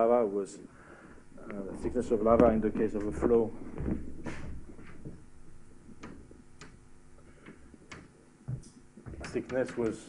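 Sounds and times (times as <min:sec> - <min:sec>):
low hum: 0:00.6 - 0:09.0
faint clicks and taps: 0:05.9 - 0:10.0.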